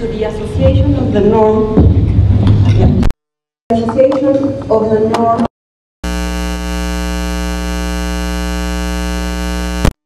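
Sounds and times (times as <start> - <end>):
steady electronic buzz: 6.0 - 10.0.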